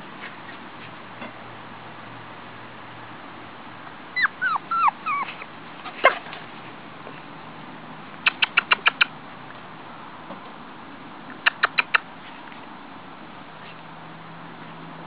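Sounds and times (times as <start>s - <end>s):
puppies whimpering and yelping: 4.2s - 5.5s.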